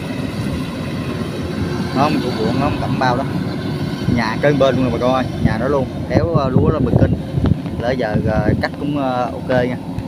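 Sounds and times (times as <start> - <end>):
distant diesel engine drone: 0.0 - 10.0.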